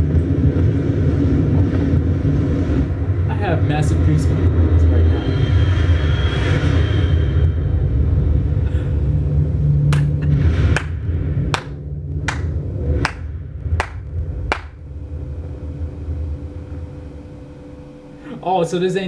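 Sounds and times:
deep low rumble: 0:00.0 - 0:18.8
person clapping slowly: 0:09.9 - 0:14.8.

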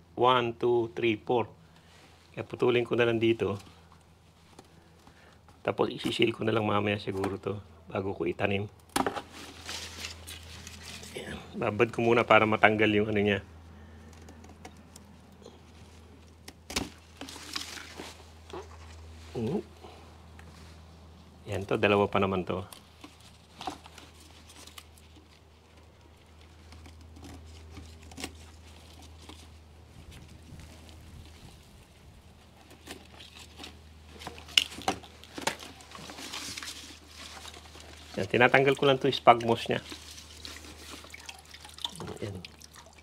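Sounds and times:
low steady hum: 0:00.0 - 0:43.0
short rustle: 0:09.2 - 0:12.3
wet moss rustling and squishing: 0:09.2 - 0:13.3, 0:14.9 - 0:19.8, 0:20.4 - 0:43.0.

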